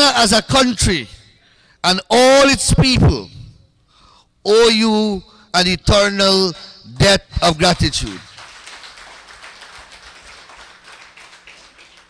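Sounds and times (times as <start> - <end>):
audience applauding: 8.1 - 12.0.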